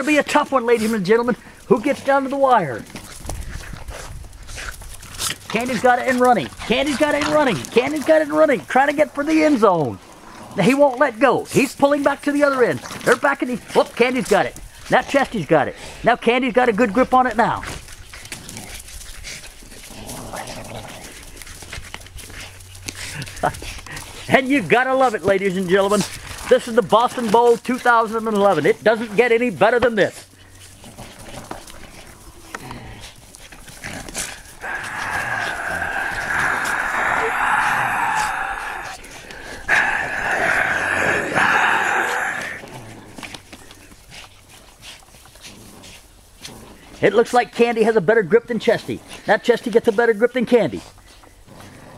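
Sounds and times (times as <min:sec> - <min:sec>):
dogs scuffling: 0:00.0 - 0:40.5, 0:41.3 - 0:51.9
dogs growling: 0:00.8 - 0:11.2, 0:17.2 - 0:47.2, 0:51.3 - 0:51.9.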